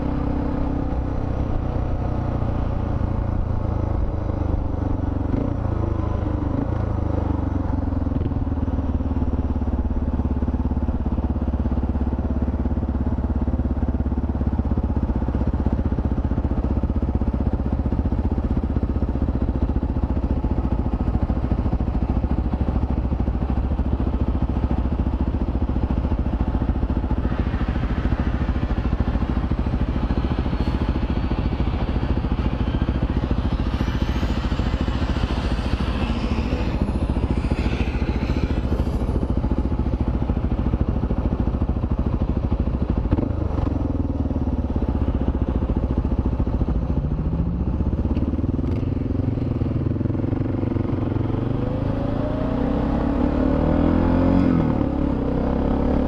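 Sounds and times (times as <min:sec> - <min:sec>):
motorcycle engine idling: 0:00.0 - 0:51.9
traffic noise rush: 0:00.0 - 0:56.0.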